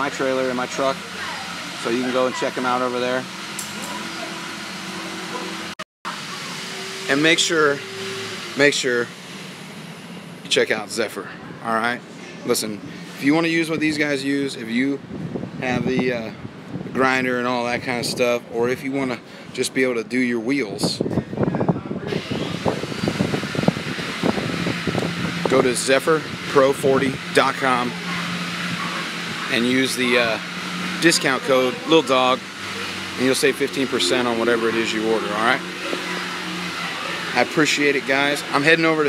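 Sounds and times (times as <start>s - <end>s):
mechanical hum: 0.0s - 39.0s
rushing air noise: 21.0s - 39.0s.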